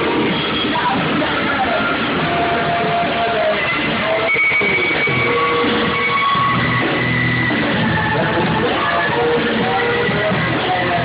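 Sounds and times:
rock band playing live: 0:00.0 - 0:11.0.

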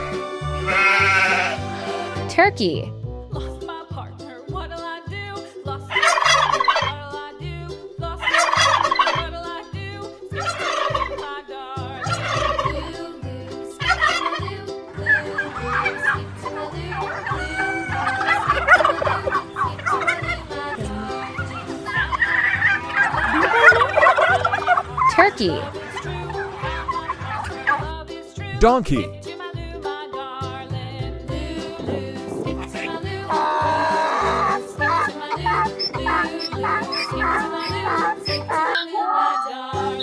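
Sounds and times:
turkeys gobbling: 0:00.0 - 0:02.2, 0:05.9 - 0:07.0, 0:08.2 - 0:09.3, 0:10.3 - 0:11.4, 0:12.0 - 0:13.1, 0:13.8 - 0:27.9, 0:31.6 - 0:40.0.

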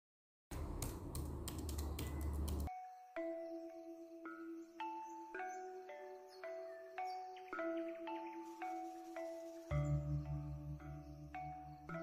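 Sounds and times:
keyboard keys clicking: 0:00.6 - 0:02.7.

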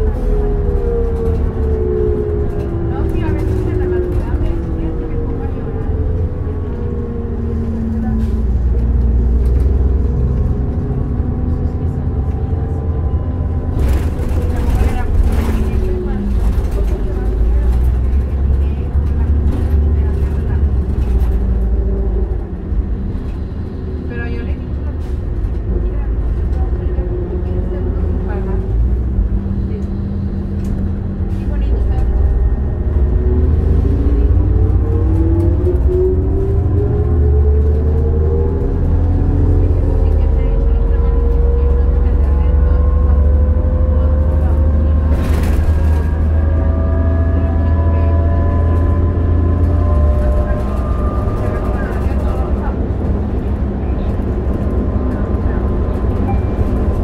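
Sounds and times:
bus engine drone with whine: 0:00.0 - 0:57.0.

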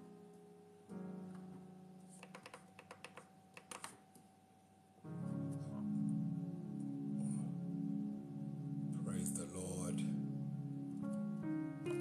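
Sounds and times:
electric keyboard chord: 0:00.0 - 0:02.0, 0:05.0 - 0:12.0.

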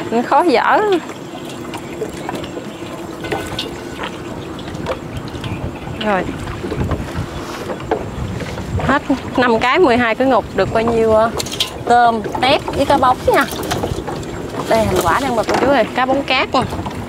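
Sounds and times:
wind on microphone: 0:00.0 - 0:17.0
fish trap rustling and clicking: 0:01.4 - 0:05.6, 0:10.9 - 0:17.0.

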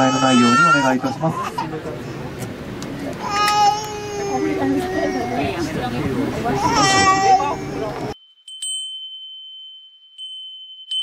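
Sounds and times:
high-pitched bell ringing: 0:08.2 - 0:11.0.

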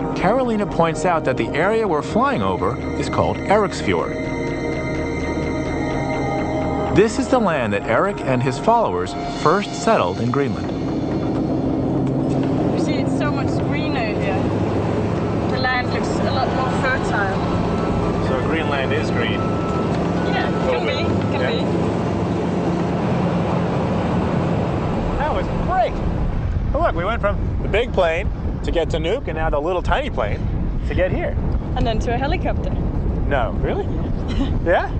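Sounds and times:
indistinct voices: 0:00.0 - 0:21.9
propeller plane engine drone: 0:00.0 - 0:34.9.

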